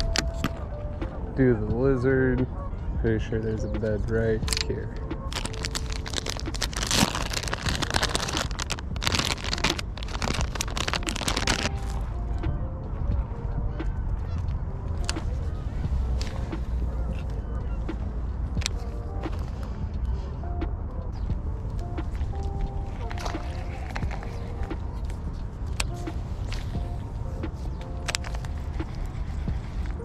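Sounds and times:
rustling handling noise: 0:00.0 - 0:00.7, 0:04.4 - 0:12.1, 0:22.0 - 0:30.0
low wind rumble: 0:00.0 - 0:30.0.

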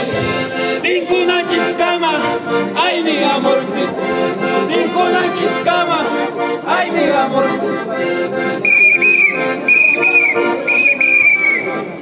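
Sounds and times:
accordion music: 0:00.0 - 0:12.0
shrill whistle: 0:08.6 - 0:11.9.

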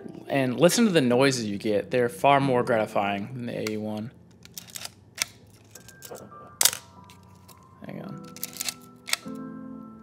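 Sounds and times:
film camera mechanical clicks: 0:08.3 - 0:09.4.

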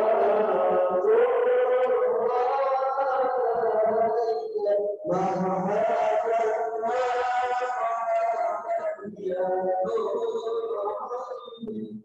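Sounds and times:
men chanting into microphones: 0:00.0 - 0:11.6.

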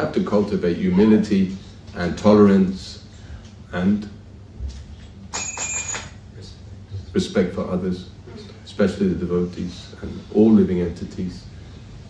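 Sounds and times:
high ding: 0:05.3 - 0:06.1.

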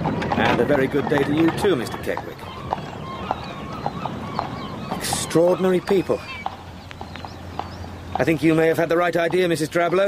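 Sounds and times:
pony hooves clip-clopping: 0:00.0 - 0:10.0.

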